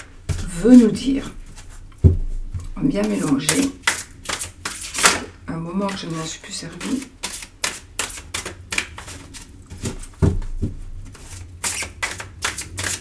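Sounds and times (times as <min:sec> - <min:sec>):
cards being shuffled: 0:03.0 - 0:05.3, 0:05.9 - 0:10.2, 0:11.0 - 0:13.0.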